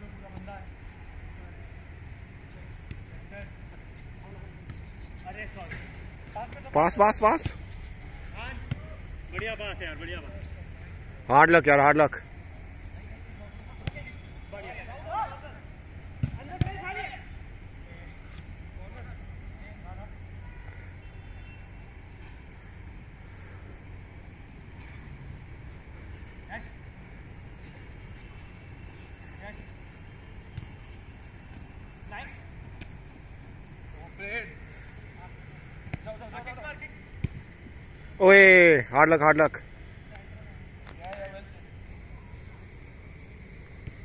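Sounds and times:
steady low background hum: 0.0s - 44.0s
football being kicked: 8.6s - 9.6s, 16.1s - 16.9s, 37.2s - 37.5s.

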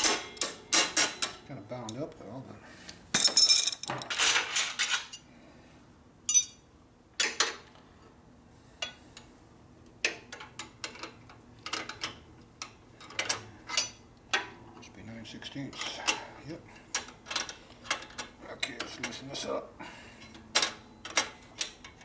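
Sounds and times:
metal wrenches clinking: 0.0s - 2.0s, 3.2s - 5.2s, 6.3s - 6.6s, 10.6s - 14.5s.

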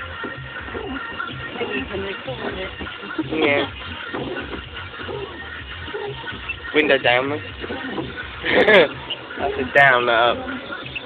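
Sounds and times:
pop music from car radio: 0.0s - 11.0s.

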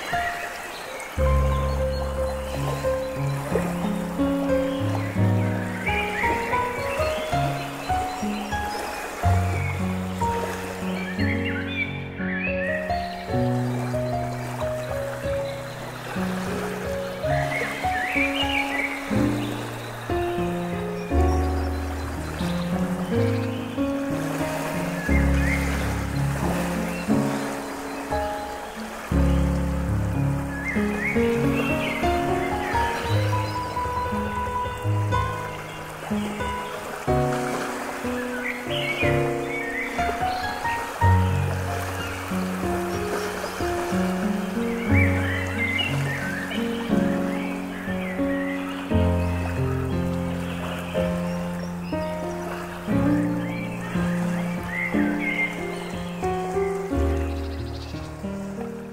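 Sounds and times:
running stream: 0.0s - 58.9s
slow piano music: 0.0s - 58.9s.

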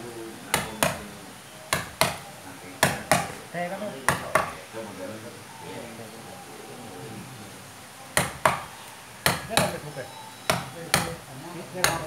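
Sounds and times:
hammer knocking on chisel: 0.5s - 1.1s, 1.7s - 3.4s, 4.1s - 4.6s, 8.2s - 9.8s, 10.5s - 12.0s.

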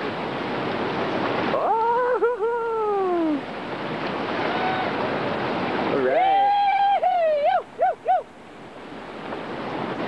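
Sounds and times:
whitewater rapids rushing: 0.0s - 10.0s
person whooping: 1.6s - 3.4s, 4.5s - 5.0s, 6.2s - 8.3s.

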